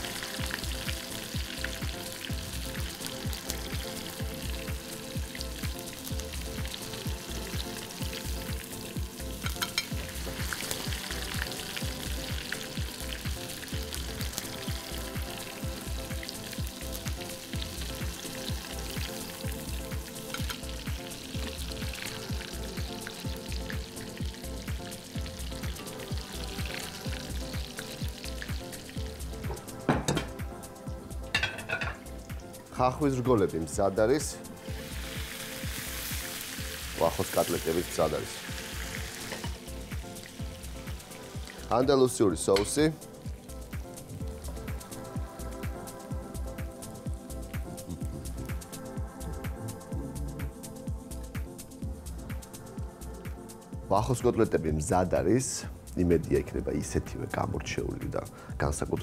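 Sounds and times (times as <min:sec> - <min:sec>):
meat sizzling in hot oil: 0:00.0 - 0:49.0.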